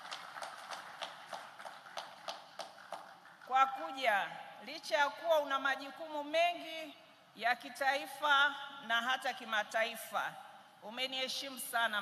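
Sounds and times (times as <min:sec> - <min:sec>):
audience clapping: 0:00.0 - 0:03.5.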